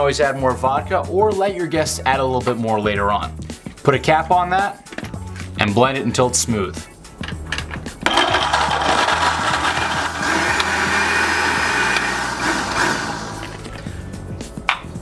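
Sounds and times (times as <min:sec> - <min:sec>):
background music: 0:00.0 - 0:15.0
blender crushing ice: 0:08.0 - 0:13.7.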